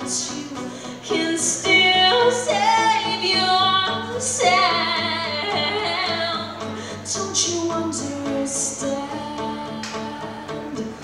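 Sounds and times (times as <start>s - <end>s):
acoustic guitars: 0.0s - 11.0s
woman singing: 0.0s - 11.0s.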